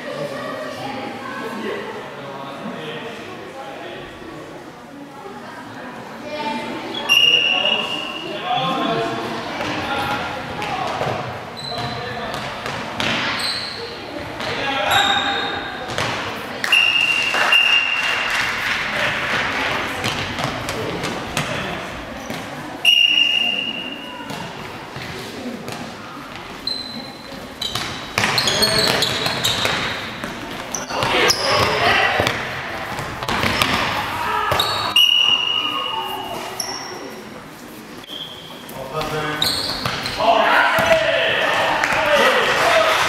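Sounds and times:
referee's whistle blasts: 7.0s - 8.2s, 16.7s - 18.0s, 22.8s - 24.1s, 34.6s - 36.3s
ball bouncing on court floor: 10.6s - 13.4s, 15.9s - 16.3s, 20.0s - 21.6s, 27.6s - 34.9s, 39.0s - 40.2s, 40.8s - 41.0s
people shouting in a hall: 33.9s - 36.6s, 40.2s - 43.0s.

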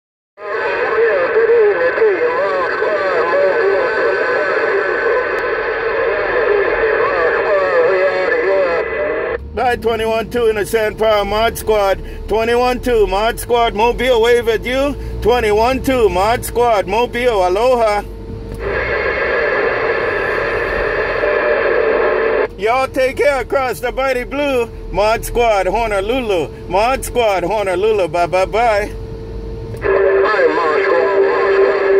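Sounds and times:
voice over radio speaker: 0.4s - 29.0s, 29.8s - 31.9s.

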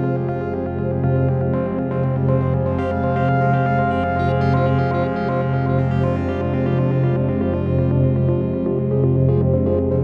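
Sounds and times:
ambient music with sustained tones: 0.0s - 10.0s.

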